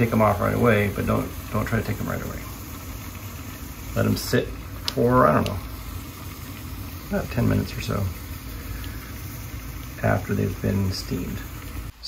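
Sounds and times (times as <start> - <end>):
garment steamer hum: 0.0 - 12.0
steam hissing: 0.0 - 12.0.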